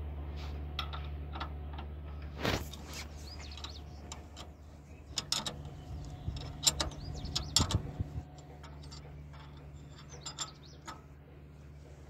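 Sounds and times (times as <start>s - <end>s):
metal tools clinking on bolts: 3.5s - 11.2s.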